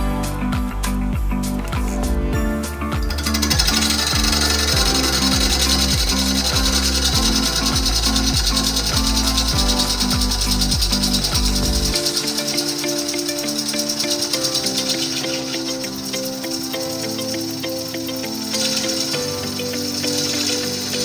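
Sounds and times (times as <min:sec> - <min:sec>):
background music with bassline: 0:00.0 - 0:21.0
lathe tool scraping wood: 0:03.0 - 0:21.0.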